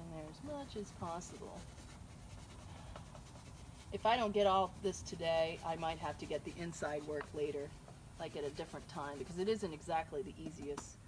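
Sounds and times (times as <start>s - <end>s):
paintbrush strokes: 0.0s - 10.8s.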